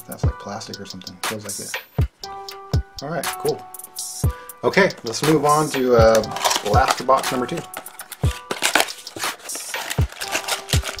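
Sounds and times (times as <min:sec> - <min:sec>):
cardboard rustling: 0:05.0 - 0:11.0.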